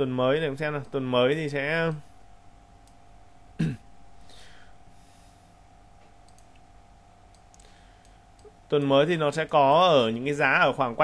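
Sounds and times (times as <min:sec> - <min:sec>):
low steady hum: 0:00.0 - 0:11.0
computer mouse clicks: 0:06.2 - 0:06.7, 0:07.3 - 0:10.2.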